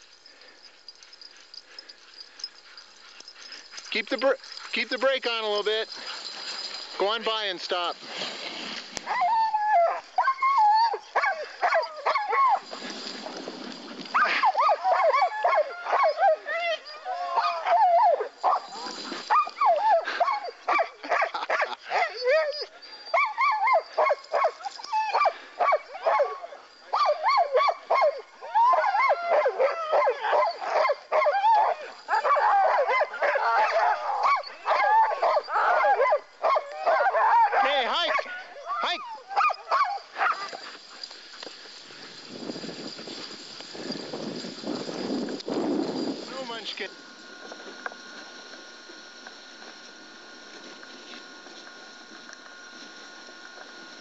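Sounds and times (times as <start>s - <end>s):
sled dogs barking and yipping: 0.0s - 54.0s.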